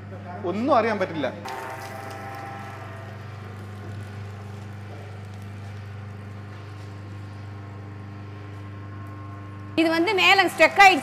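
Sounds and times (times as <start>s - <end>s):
juice machine motor humming: 1.4s - 11.0s.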